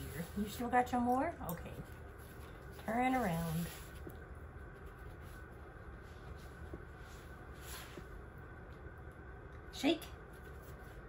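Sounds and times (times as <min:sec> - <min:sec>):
faint soft rustles: 0:00.0 - 0:08.9
steady low hum: 0:00.0 - 0:11.0.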